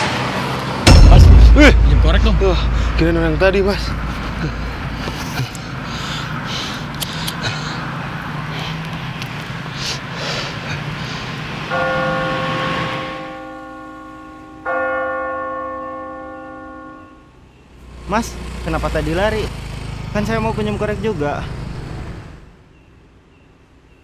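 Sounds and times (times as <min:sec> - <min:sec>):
bell ringing: 0:11.7 - 0:17.2.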